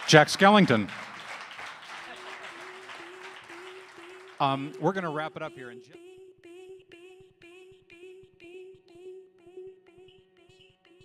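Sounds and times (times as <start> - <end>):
audience applauding: 0.0 - 5.2.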